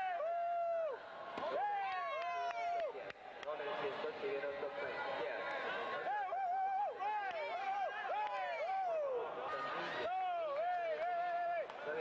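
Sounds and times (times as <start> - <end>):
arena crowd hubbub: 0.0 - 12.0.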